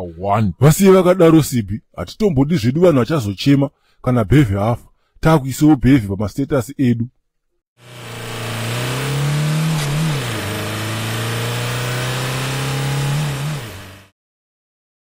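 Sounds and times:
car engine revving: 0:07.8 - 0:14.1.

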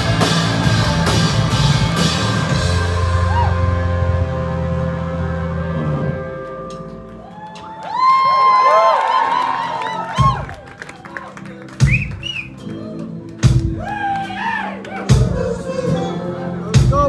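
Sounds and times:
rock band playing: 0:00.0 - 0:07.8, 0:09.8 - 0:14.0.

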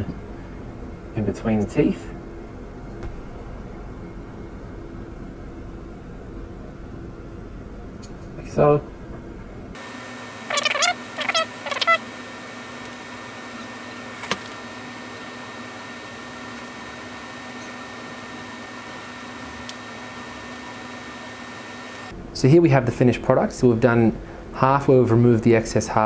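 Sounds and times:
steady low hum: 0:00.0 - 0:15.3
wavering animal calls: 0:10.5 - 0:12.0.

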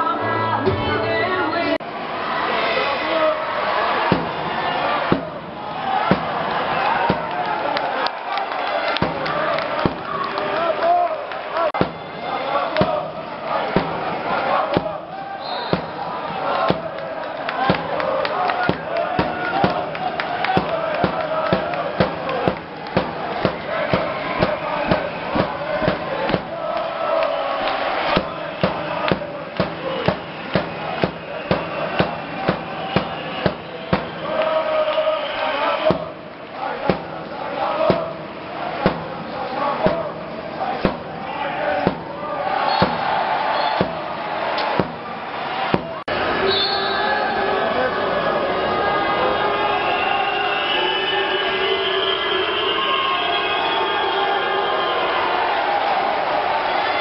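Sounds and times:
sharp rhythmic beats: 0:04.1 - 0:07.6, 0:09.0 - 0:10.2, 0:11.7 - 0:27.0, 0:28.0 - 0:34.5, 0:35.8 - 0:46.1
crowd chanting in unison: 0:11.5 - 0:46.4.

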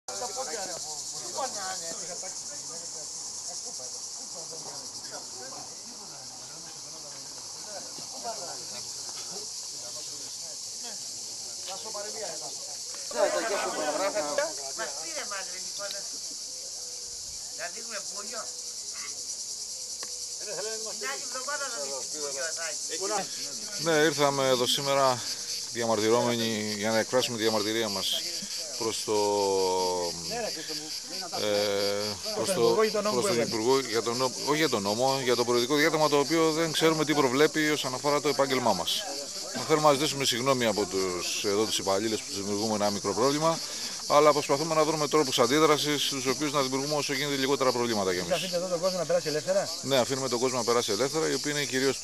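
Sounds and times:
cicadas chorus: 0:00.0 - 0:52.0
people talking indistinctly: 0:00.0 - 0:52.0.

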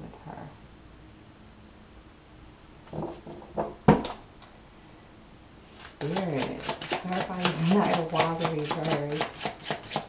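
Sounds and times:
cards being shuffled: 0:05.8 - 0:10.0.

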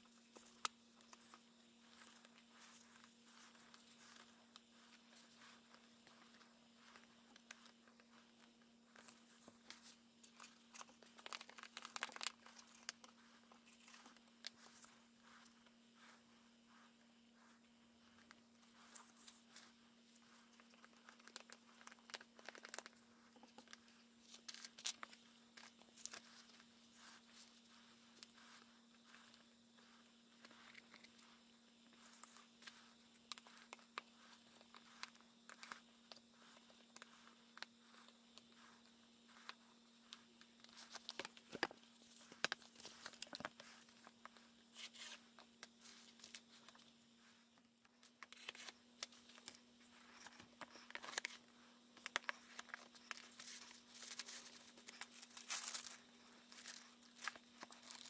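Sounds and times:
steady low hum: 0:00.0 - 0:58.0
book pages rustling and clicking: 0:00.1 - 0:58.0.

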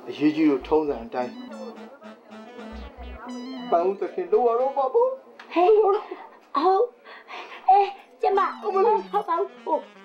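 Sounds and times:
background music: 0:00.0 - 0:05.2.

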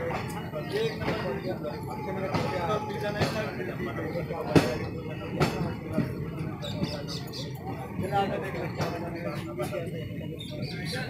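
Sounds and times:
moving train knocks: 0:00.0 - 0:07.3
indistinct voices: 0:00.0 - 0:11.0.

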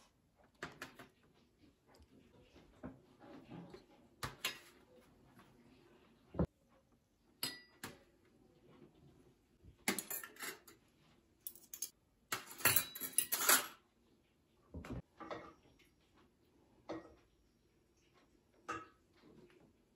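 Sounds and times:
cutlery and glass clinking on tray: 0:09.9 - 0:10.8, 0:11.5 - 0:13.8.

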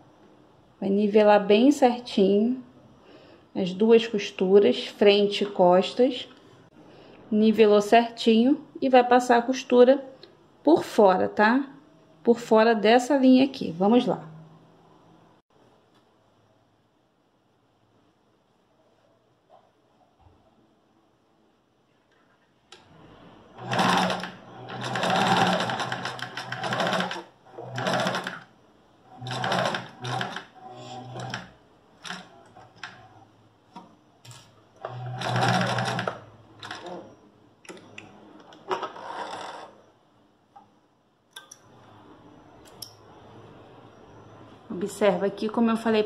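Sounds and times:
sewing machine stitching: 0:22.8 - 0:28.5, 0:29.1 - 0:33.2, 0:34.8 - 0:37.1, 0:38.6 - 0:39.8.

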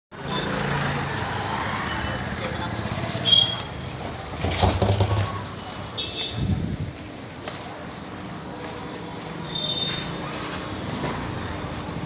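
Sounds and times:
street din: 0:00.1 - 0:12.0.

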